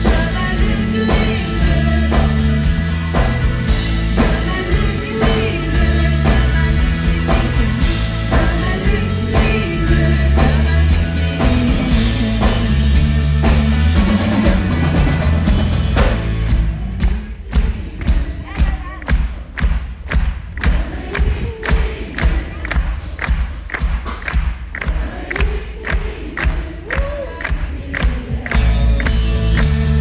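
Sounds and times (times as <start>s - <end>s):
bass drum beat: 0.0s - 30.0s
crowd singing and shouting: 0.0s - 30.0s
full band playing: 0.0s - 30.0s
crowd clapping in time: 17.0s - 30.0s.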